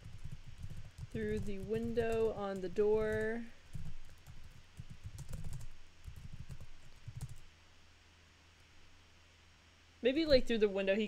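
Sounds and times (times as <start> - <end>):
computer keyboard typing: 0.0 - 7.4.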